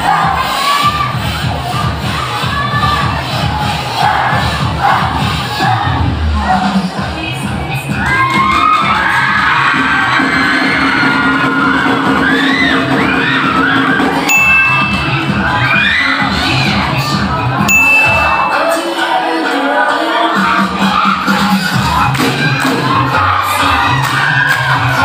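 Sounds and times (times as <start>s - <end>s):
crowd screaming and cheering: 0.0s - 25.0s
loud dance music: 0.0s - 25.0s
short high ringing tones: 14.3s - 15.5s, 17.7s - 19.2s.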